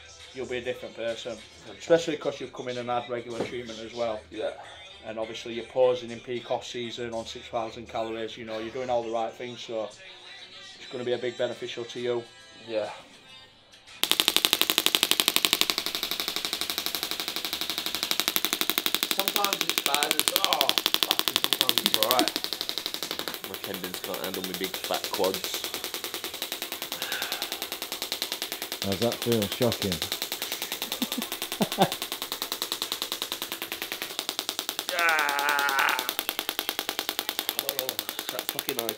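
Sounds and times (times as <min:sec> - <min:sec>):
rapid train of sharp clicks: 0:14.0 - 0:38.9
person laughing or grunting: 0:30.9 - 0:32.0, 0:34.9 - 0:36.2.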